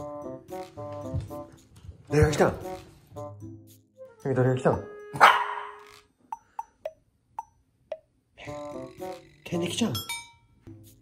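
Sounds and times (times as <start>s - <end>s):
puppy barking: 5.2s - 5.9s.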